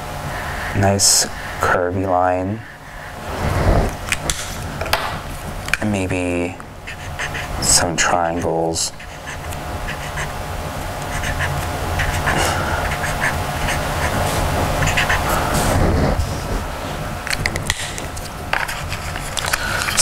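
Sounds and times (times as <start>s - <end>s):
steady low hum: 0.0s - 20.0s
marker squeaking on paper: 6.9s - 7.8s, 8.9s - 15.8s.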